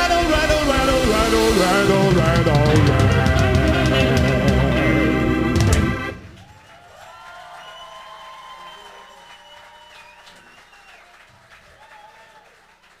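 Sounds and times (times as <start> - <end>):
audience applauding and cheering: 1.5 - 13.0
long held whoop: 6.4 - 11.1, 11.7 - 12.6.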